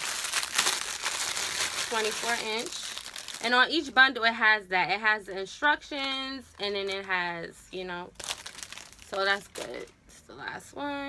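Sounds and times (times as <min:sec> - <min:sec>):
plastic bag crinkling: 0:00.0 - 0:03.8, 0:08.1 - 0:09.9.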